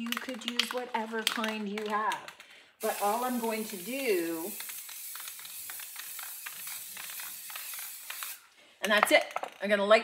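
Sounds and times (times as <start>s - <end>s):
aerosol can spraying hiss: 2.8s - 8.5s.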